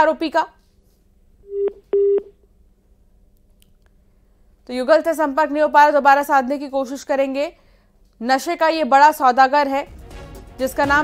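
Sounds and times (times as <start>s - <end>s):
telephone line beeps: 1.5s - 2.3s.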